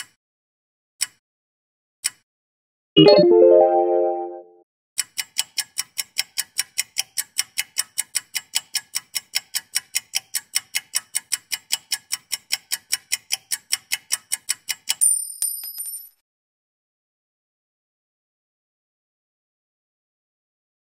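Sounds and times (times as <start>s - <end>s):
rapid clock-like ticking: 5.0s - 15.0s.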